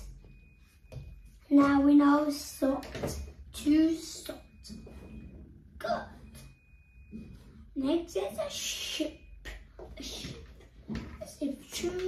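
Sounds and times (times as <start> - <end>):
child making wordless vocal sounds: 5.8 - 6.4.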